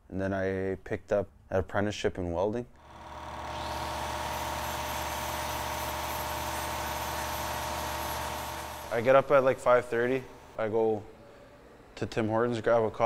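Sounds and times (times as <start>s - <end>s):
machine humming and hissing: 2.8s - 12.0s.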